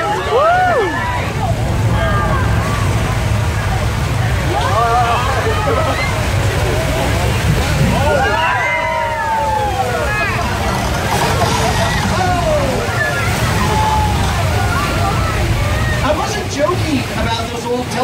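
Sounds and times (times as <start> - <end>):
people whooping: 0.0 - 3.2, 4.4 - 6.8, 7.9 - 16.0
people crying out: 0.0 - 3.3, 7.9 - 16.0
low rumble: 0.0 - 16.0
water rushing down a street: 0.0 - 18.0.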